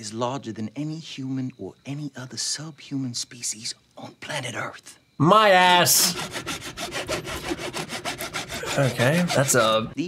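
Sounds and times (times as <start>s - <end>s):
saw rasping through bone: 6.0s - 10.0s.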